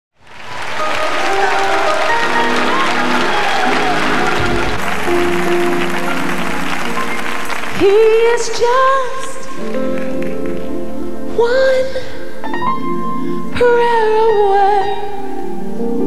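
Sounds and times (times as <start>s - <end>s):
audience applauding and cheering: 0.2s - 10.8s
live gospel music: 0.2s - 16.0s.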